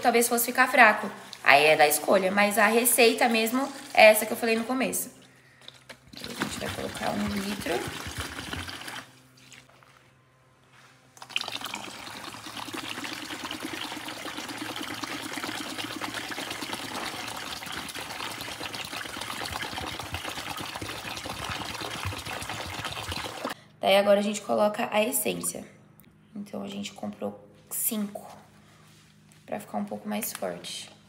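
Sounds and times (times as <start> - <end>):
liquid pouring into plastic bucket: 5.6 - 9.8, 11.2 - 23.6.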